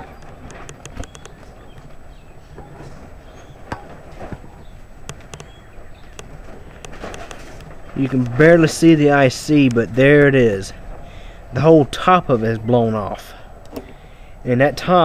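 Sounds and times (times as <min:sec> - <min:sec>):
plastic flapping and clicking: 0:00.0 - 0:10.0
low steady rumble: 0:00.0 - 0:15.0.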